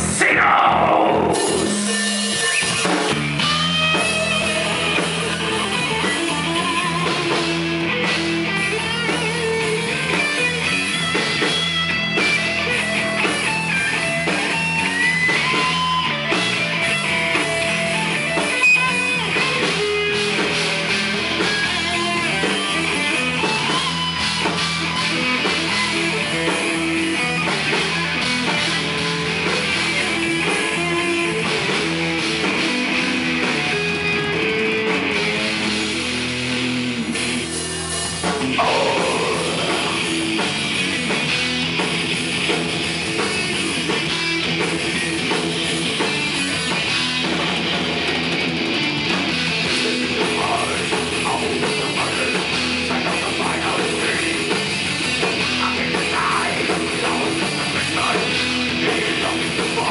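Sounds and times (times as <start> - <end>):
heavy metal band playing live: 0.0 - 59.9.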